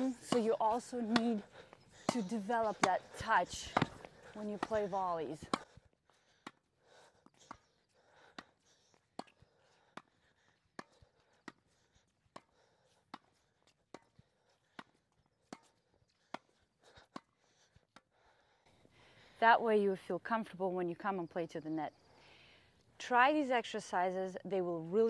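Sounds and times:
tennis rackets hitting ball: 0:00.0 - 0:01.4, 0:02.0 - 0:05.7.

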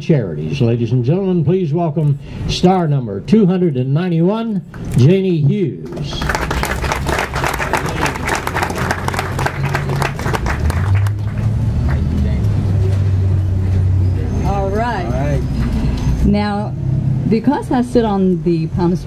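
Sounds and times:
crowd applauding: 0:05.9 - 0:12.4
low steady rumble: 0:06.0 - 0:14.0.

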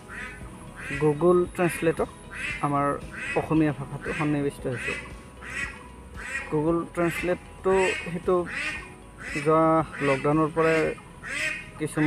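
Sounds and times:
man speaking: 0:11.8 - 0:12.0.

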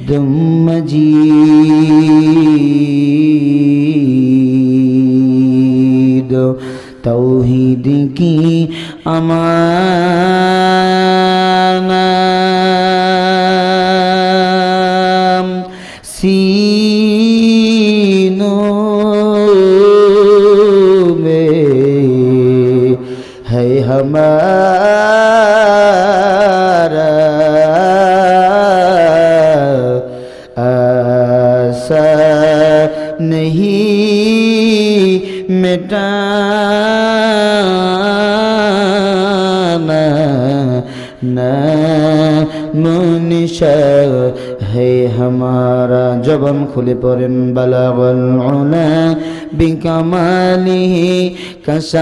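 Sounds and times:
man chanting into a microphone: 0:00.0 - 0:52.0
breaths: 0:06.6 - 0:07.1, 0:08.7 - 0:09.1, 0:15.6 - 0:16.2, 0:23.0 - 0:23.5, 0:30.0 - 0:30.6, 0:32.9 - 0:33.2, 0:35.2 - 0:35.5, 0:40.8 - 0:41.3, 0:42.5 - 0:42.8, 0:44.3 - 0:44.7, 0:49.2 - 0:49.6, 0:51.3 - 0:51.7.

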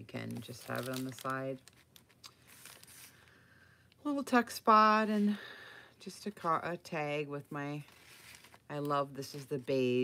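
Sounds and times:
paper pages rustling: 0:00.2 - 0:03.3, 0:07.7 - 0:10.0.

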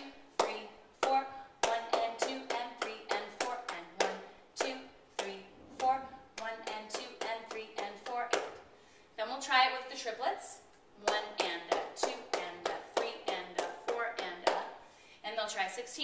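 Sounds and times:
hand claps on a steady beat: 0:11.1 - 0:14.7.

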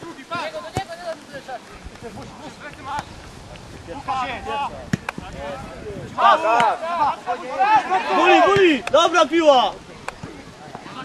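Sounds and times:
players shouting: 0:03.9 - 0:09.9.

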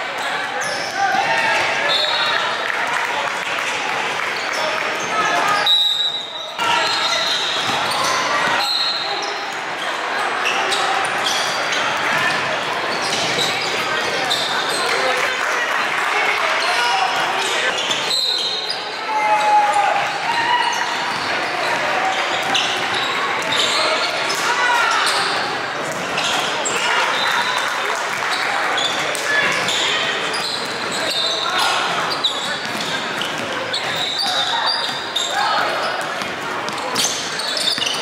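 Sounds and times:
people talking: 0:00.0 - 0:38.0
sneaker squeaks: 0:00.2 - 0:02.5, 0:04.4 - 0:15.1, 0:16.6 - 0:27.6, 0:28.2 - 0:38.0.

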